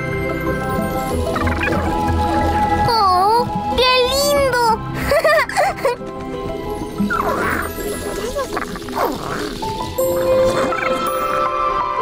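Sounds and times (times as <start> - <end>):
background music score: 0.0 - 12.0.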